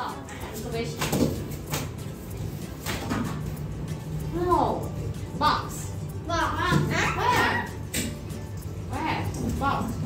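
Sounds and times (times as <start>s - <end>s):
hands slapping cards on desks: 0.9s - 3.6s.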